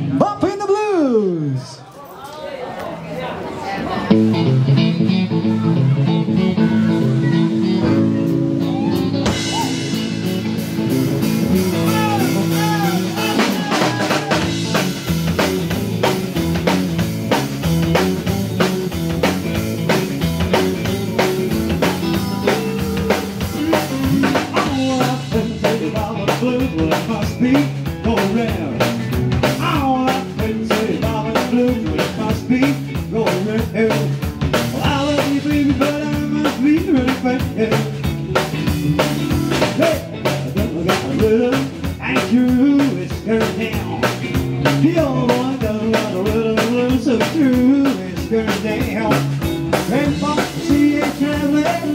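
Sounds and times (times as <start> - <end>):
bass guitar: 0.0 - 1.8, 3.8 - 51.9
drum kit beat: 4.1 - 51.9
electric guitar lead: 4.1 - 51.9.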